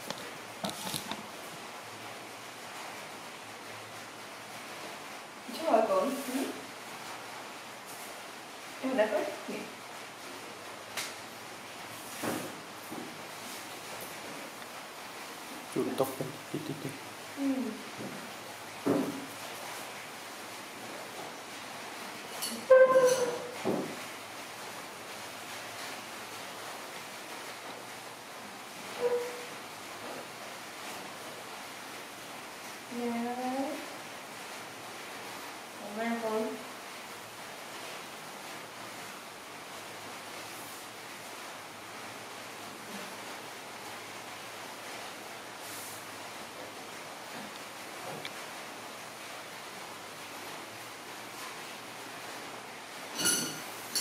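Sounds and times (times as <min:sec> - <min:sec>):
tissue rustling on steel table: 0:00.0 - 0:01.3
steady background hiss: 0:00.0 - 0:54.0.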